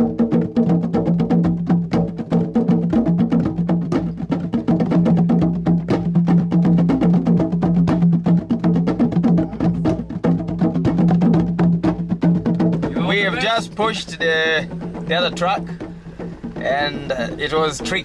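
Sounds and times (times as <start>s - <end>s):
fast busy percussion: 0.0s - 18.0s
steady low tone: 12.8s - 18.0s.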